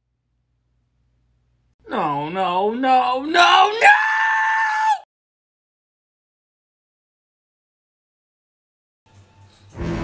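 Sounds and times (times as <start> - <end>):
man screaming high-pitched: 1.9 - 5.1.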